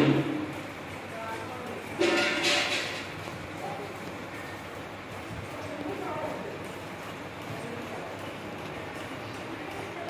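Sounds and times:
faint voices: 0.8s - 10.0s.

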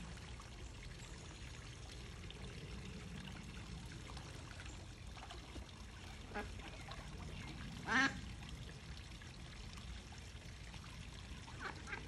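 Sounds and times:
waterfall trickling into pond: 0.0s - 12.0s.

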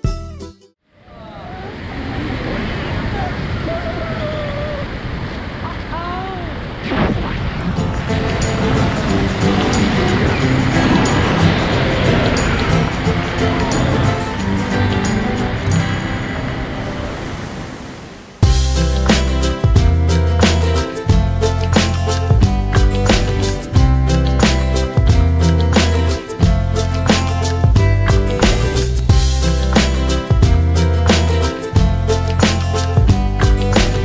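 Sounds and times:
background music: 0.0s - 0.8s, 7.8s - 17.5s, 18.4s - 34.0s
freefall wind on microphone: 0.9s - 18.5s
faint voices: 1.0s - 6.7s.

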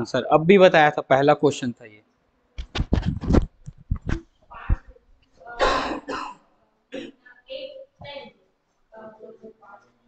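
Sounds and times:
man coughing: 5.6s - 7.2s.

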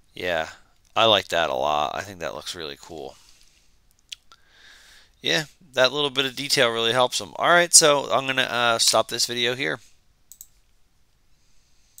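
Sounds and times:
faint computer mouse clicks: 10.3s - 10.7s.

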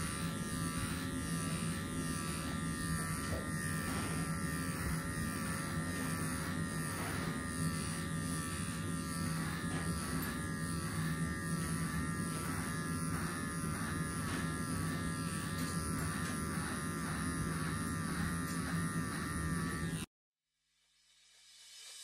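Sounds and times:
electric clipper buzzing: 0.0s - 20.1s.

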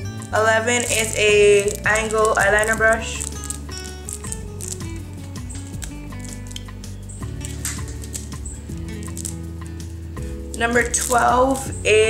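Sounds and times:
background music melody and bass: 0.0s - 12.0s.

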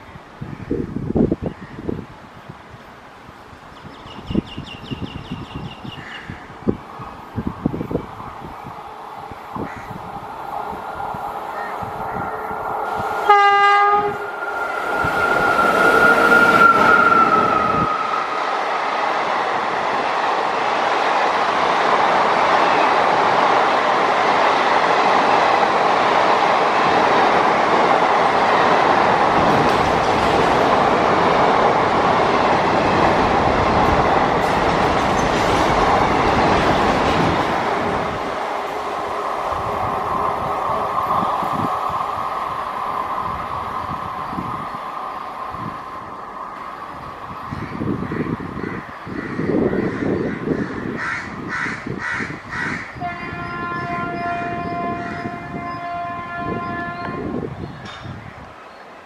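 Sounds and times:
locomotive horn blast: 12.9s - 14.9s, 53.0s - 57.5s
train wheels clattering on rails: 19.2s - 41.8s, 57.8s - 58.2s.

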